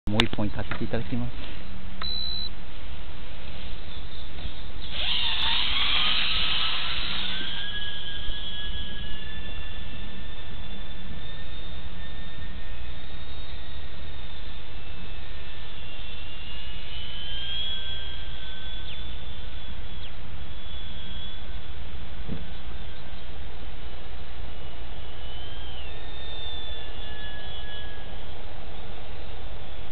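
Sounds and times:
steady rushing noise: 0.1s - 29.9s
electric motor and propeller whine: 3.3s - 29.9s.

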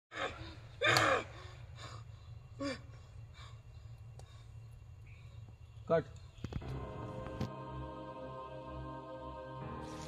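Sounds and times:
person gasping and crying: 0.1s - 2.9s
steady low hum: 0.1s - 10.0s.

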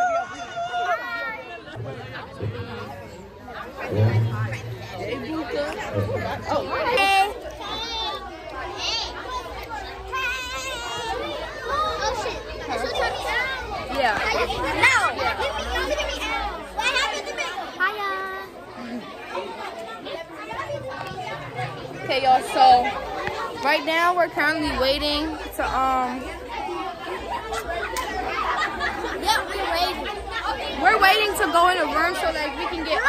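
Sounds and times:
girls talking: 0.0s - 33.0s.

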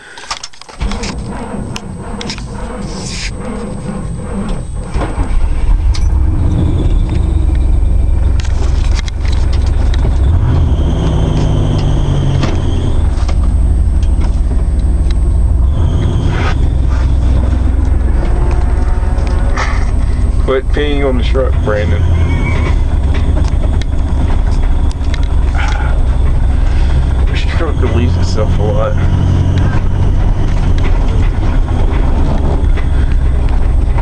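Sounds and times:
truck engine rumble: 0.0s - 34.0s
knocks and rattles: 0.3s - 34.0s.

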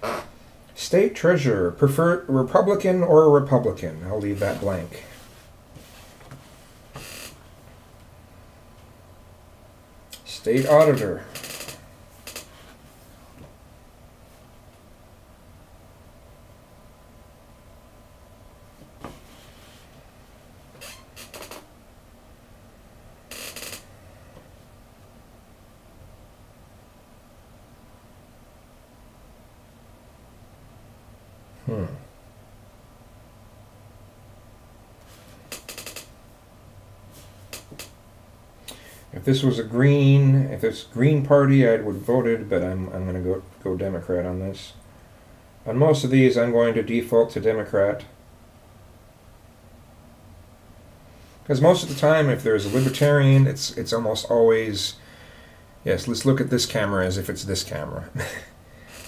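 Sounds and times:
faint low hum: 0.0s - 59.0s
paper sliding across table: 4.3s - 7.2s.

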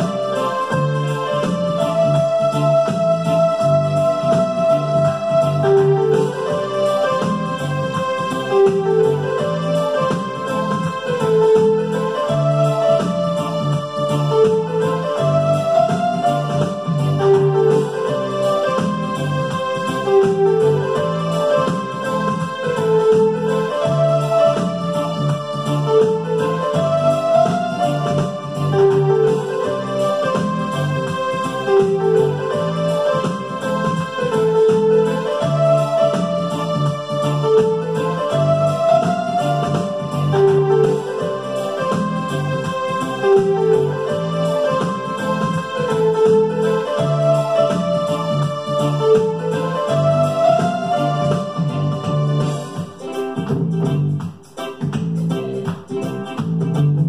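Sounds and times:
electronic keyboard melody: 0.0s - 57.0s.

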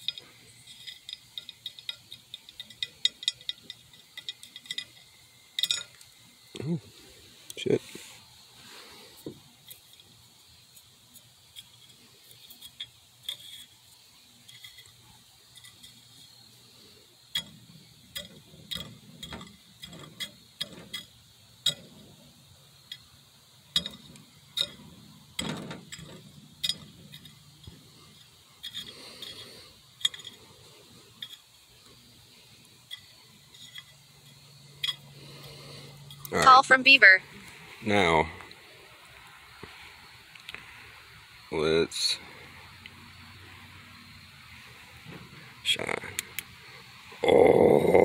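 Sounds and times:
stick scraping powder on glass: 9.6s - 22.2s.

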